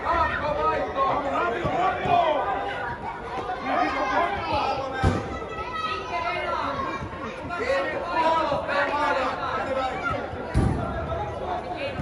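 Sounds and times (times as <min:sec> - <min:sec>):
voices chattering and calling: 0:00.0 - 0:12.0.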